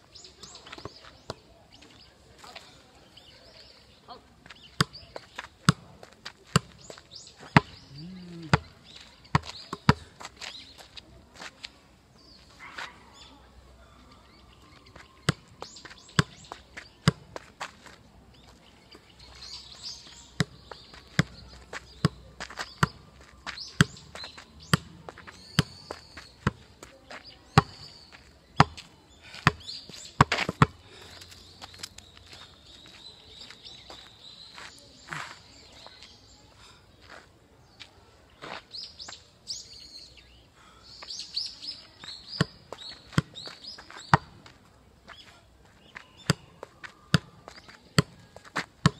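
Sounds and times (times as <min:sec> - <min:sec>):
birds chirping faintly: 0:00.0 - 0:48.9.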